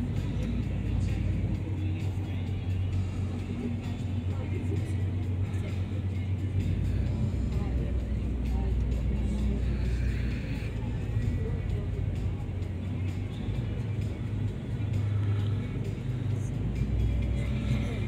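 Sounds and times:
ferry engine low rumble: 0.0 - 18.0.

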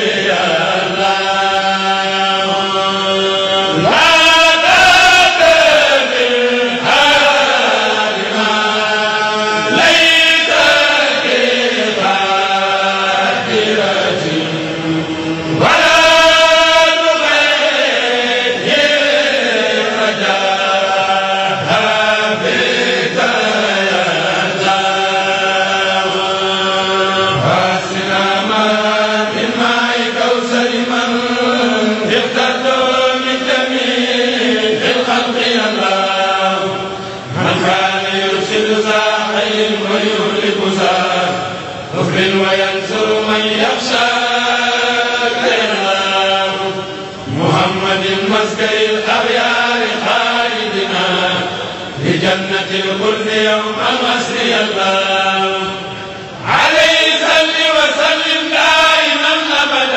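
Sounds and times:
men chanting: 0.0 - 59.9.

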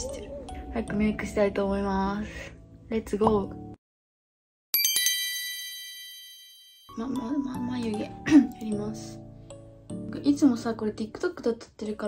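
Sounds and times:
bell-like chime: 4.8 - 7.1.

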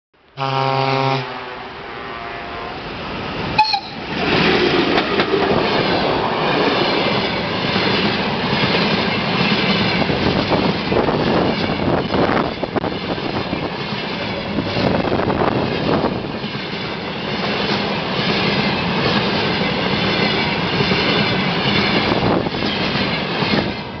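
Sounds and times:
freight train rumbling past: 0.4 - 24.0
wheels clacking over rail joints: 3.3 - 24.0.

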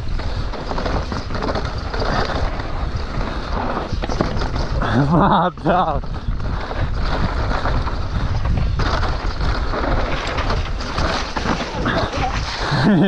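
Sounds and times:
bike clattering over bumps: 0.0 - 13.0
tyres rumbling over dirt: 0.0 - 13.0
wind rushing over microphone: 0.0 - 13.0.

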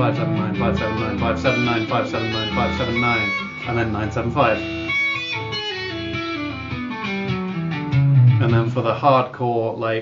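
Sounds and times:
electric guitar legato notes: 0.0 - 8.9.

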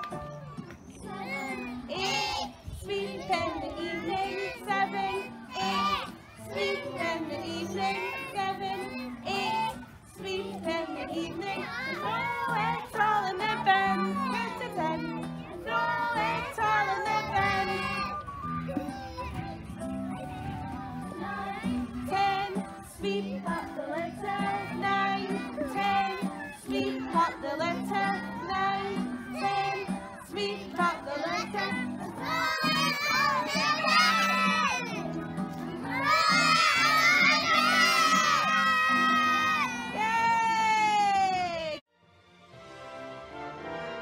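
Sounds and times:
recorded musical accompaniment: 0.0 - 44.0
children singing together: 0.1 - 40.0.

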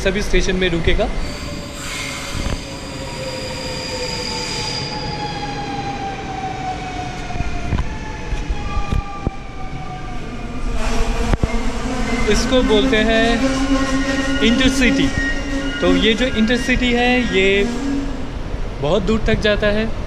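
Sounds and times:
train wheels rumbling: 0.0 - 19.9
train motor whine: 10.6 - 18.4.

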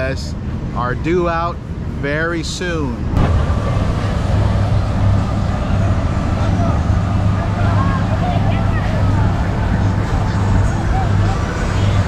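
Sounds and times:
boat engine droning: 0.0 - 12.0
wind noise: 3.0 - 12.0
faint voices: 3.4 - 12.0.

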